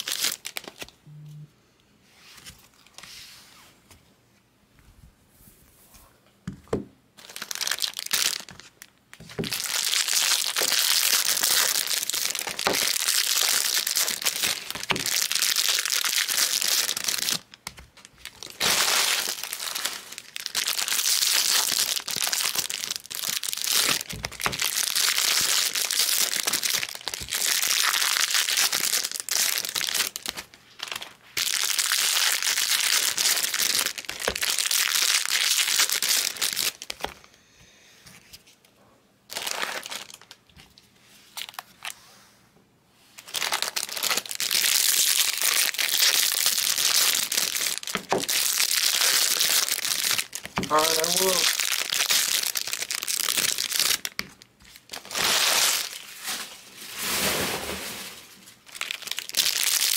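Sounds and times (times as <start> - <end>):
foil wrappers tearing and crinkling: 0.0 - 1.0, 7.2 - 37.2, 39.3 - 40.4, 43.2 - 59.9.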